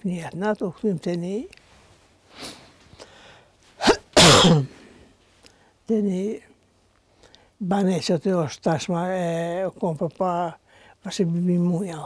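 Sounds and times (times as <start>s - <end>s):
woman catching breath: 2.3s - 3.6s.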